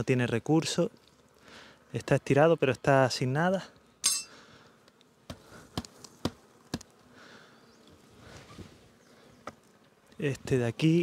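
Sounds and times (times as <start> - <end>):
honey bees buzzing: 0.0 - 11.0
metallic clink: 4.0 - 4.3.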